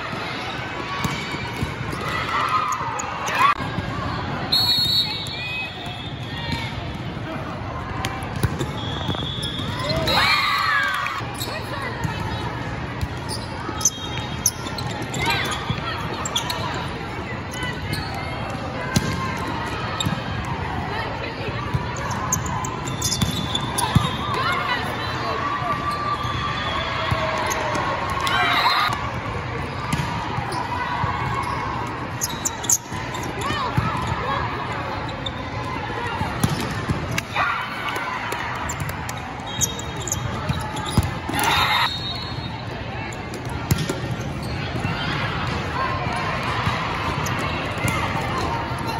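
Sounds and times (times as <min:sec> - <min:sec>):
volleyballs hit and bouncing: 0:00.0 - 0:04.4, 0:05.9 - 0:10.2, 0:10.8 - 0:21.0, 0:21.6 - 0:24.9, 0:27.1 - 0:34.5, 0:36.1 - 0:41.8, 0:43.1 - 0:48.9
many voices in echoing hall: 0:00.0 - 0:48.9
volleyballs thudding: 0:43.3 - 0:44.2.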